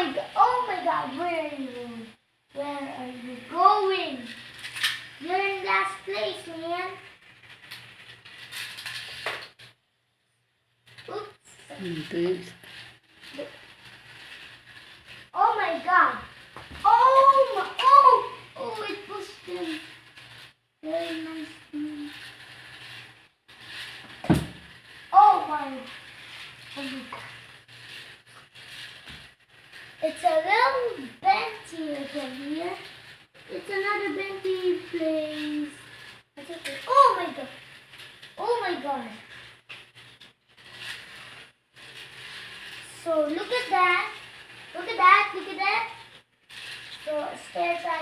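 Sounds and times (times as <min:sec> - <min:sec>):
toy car rattling on plastic track: 0:00.0 - 0:09.8, 0:10.8 - 0:48.0
child exclaiming and humming: 0:16.8 - 0:19.8, 0:20.8 - 0:22.1, 0:25.2 - 0:25.9.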